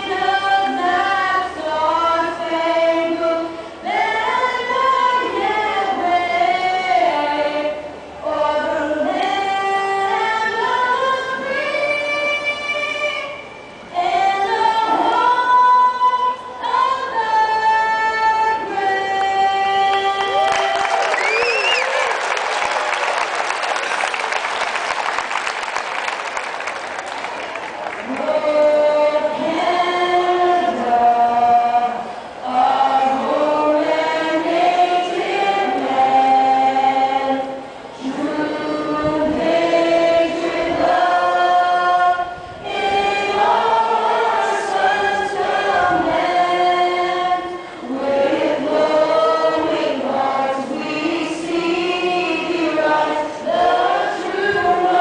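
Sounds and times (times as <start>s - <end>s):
girl singing anthem into microphone: 0.0s - 20.5s, 28.1s - 55.0s.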